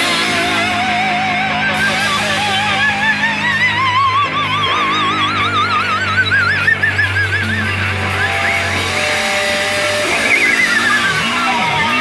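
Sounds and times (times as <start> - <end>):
electric guitar with wide vibrato: 0.0 - 12.0
rock band playing: 0.0 - 12.0.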